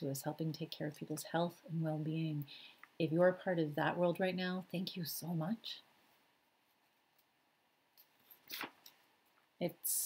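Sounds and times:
magazine page turning: 0:08.0 - 0:09.0.

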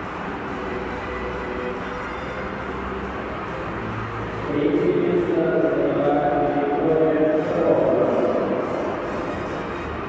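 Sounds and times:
large hall background din: 0:00.0 - 0:10.0.

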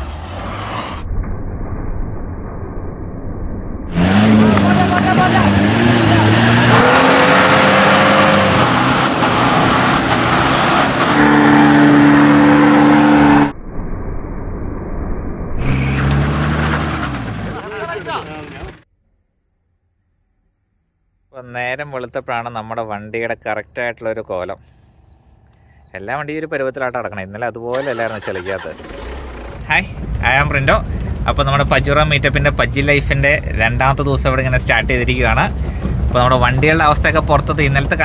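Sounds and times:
off-road engines revving hard: 0:03.9 - 0:13.5, 0:15.6 - 0:18.8.

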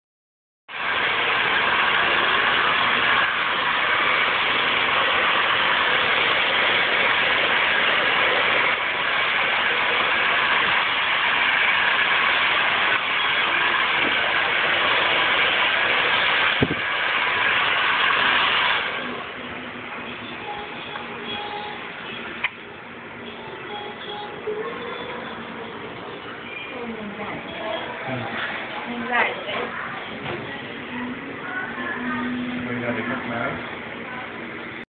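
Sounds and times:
hair dryer blowing: 0:00.7 - 0:19.4.

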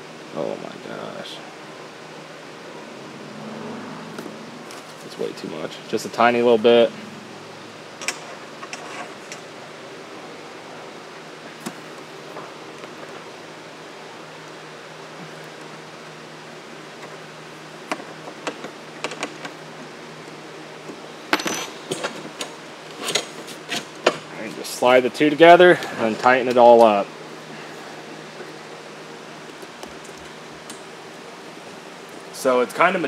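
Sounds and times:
steady low hiss: 0:00.0 - 0:18.9.

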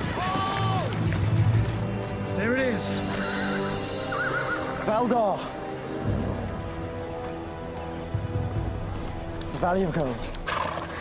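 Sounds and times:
background music with held notes: 0:00.1 - 0:11.0
horse whinnying: 0:03.0 - 0:04.9.

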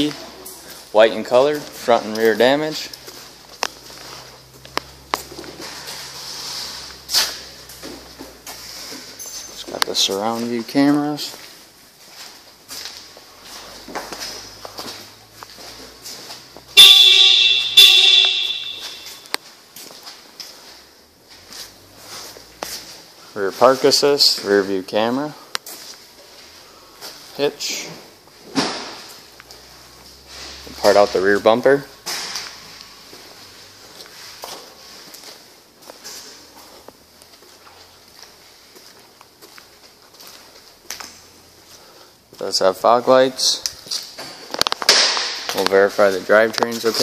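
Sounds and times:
footsteps on concrete floor: 0:00.0 - 0:42.6
loud horn-like tone: 0:16.8 - 0:19.2.

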